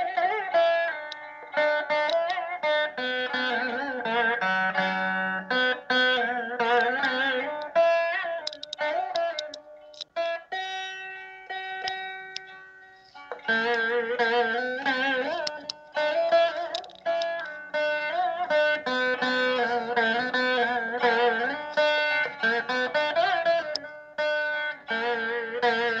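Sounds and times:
veena plucked notes: 0:00.0 - 0:26.0.

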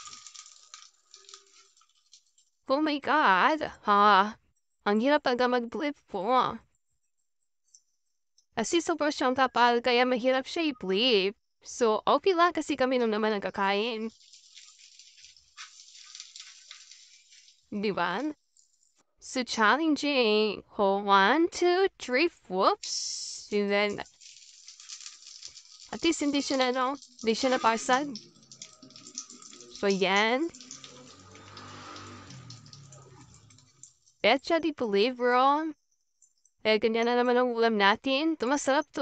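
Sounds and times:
egg sizzling in a pan: 0:00.0 - 0:02.6, 0:14.0 - 0:18.3, 0:23.3 - 0:34.2.

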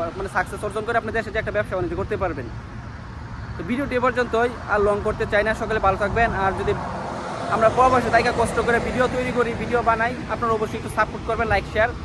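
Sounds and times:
man talking: 0:00.0 - 0:02.6, 0:03.6 - 0:06.9, 0:07.5 - 0:12.0.

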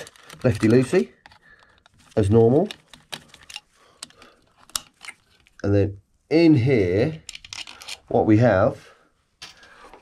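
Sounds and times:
plastic faceplate handled: 0:00.0 - 0:05.6
screwdriver clicks and scrapes: 0:02.6 - 0:05.2, 0:07.3 - 0:08.1.

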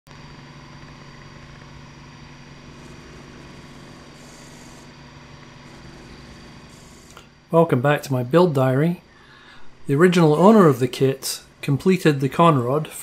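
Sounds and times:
milling spindle humming: 0:00.1 - 0:13.0.

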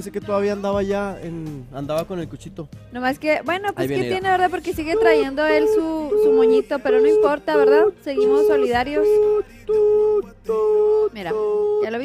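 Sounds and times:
high voice-like tone: 0:04.9 - 0:12.0.

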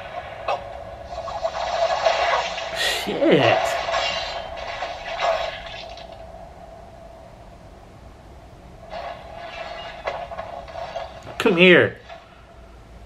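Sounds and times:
mid-pitched hum with hiss: 0:00.0 - 0:13.0.

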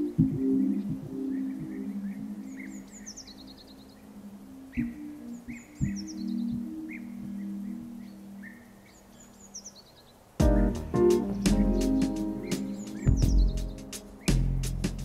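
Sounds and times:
soft instrumental music: 0:00.0 - 0:08.6, 0:10.4 - 0:15.0
bird singing: 0:00.0 - 0:14.6.

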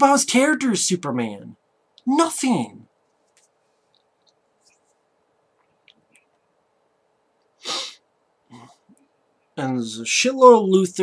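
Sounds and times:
man speaking: 0:00.0 - 0:02.9, 0:09.6 - 0:11.0
man blowing out breath: 0:07.6 - 0:08.0.

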